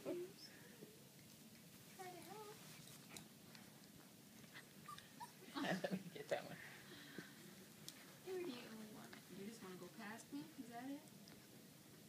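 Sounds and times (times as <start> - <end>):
puppy whimper: 4.6 - 5.4.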